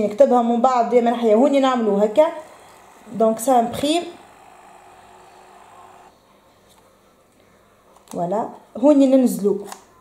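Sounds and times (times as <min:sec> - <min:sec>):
faint hum: 0:01.5 - 0:07.8.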